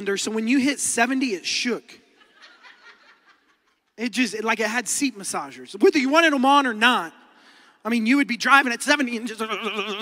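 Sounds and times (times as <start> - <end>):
audience chuckling and laughter: 2.1 - 4.0.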